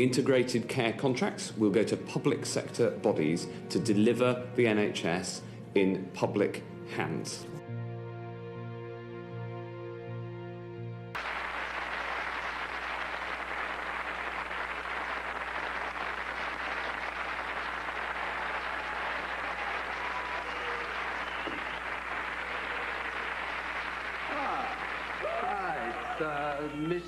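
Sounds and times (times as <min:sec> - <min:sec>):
studio audience applauding: 0:11.1 - 0:27.0.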